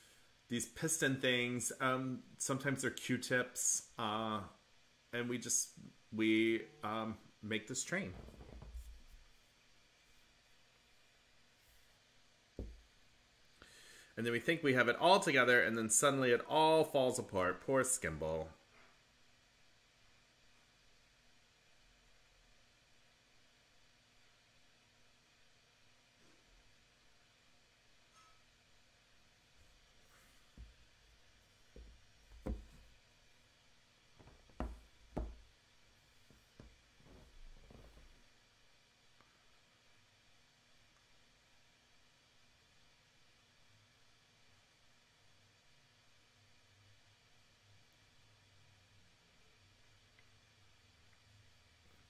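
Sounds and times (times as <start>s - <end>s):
knocks on a hard surface: 12.6s - 12.8s, 31.8s - 32.9s, 34.2s - 35.5s
low thump: 12.6s - 12.9s.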